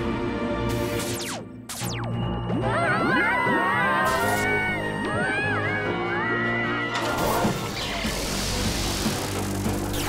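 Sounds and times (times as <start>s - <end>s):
cartoon music with low bass: 0.0s - 10.0s.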